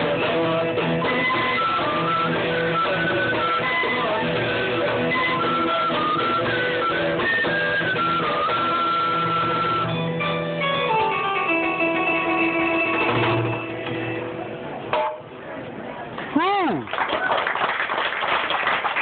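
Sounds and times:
recorder ensemble playing: 0:00.0 - 0:14.4
plucked harpsichord: 0:09.9 - 0:15.3.

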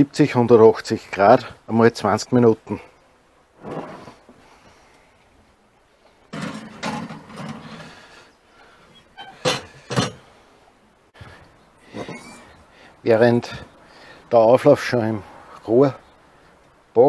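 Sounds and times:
oven door and dish clattering: 0:06.3 - 0:08.0, 0:09.2 - 0:10.2.

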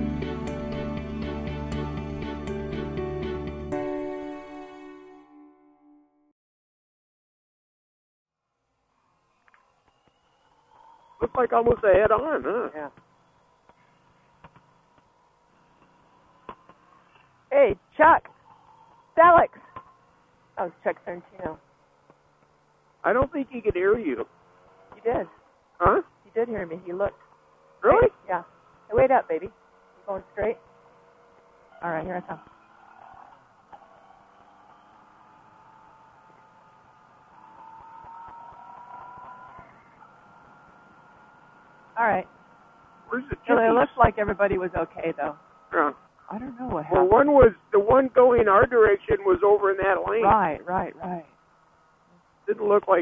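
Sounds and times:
faint motorcycle engine whine: 0:00.0 - 0:05.1, 0:08.4 - 0:53.0
thin steady tone: 0:38.4 - 0:53.0.

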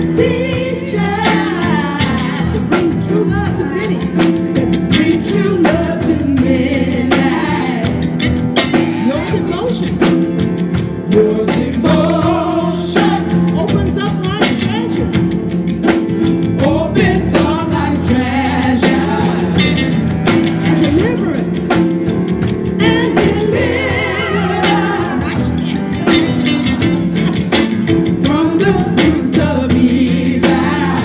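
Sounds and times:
voices singing devotional song: 0:00.0 - 0:08.0, 0:11.0 - 0:13.6, 0:16.6 - 0:21.8, 0:22.7 - 0:26.1, 0:28.1 - 0:31.0
instrumental accompaniment: 0:00.0 - 0:31.0.

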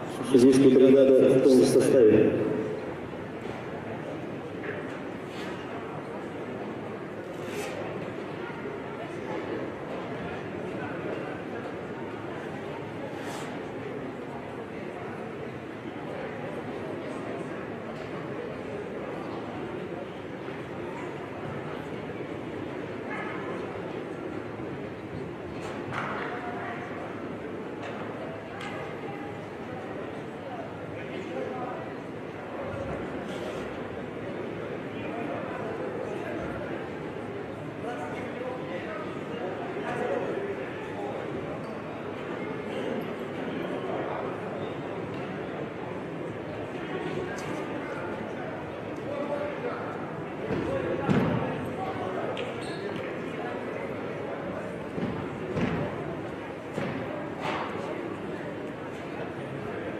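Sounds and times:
indistinct voices echoing: 0:00.0 - 0:03.2
murmur of distant voices: 0:00.0 - 0:59.9.

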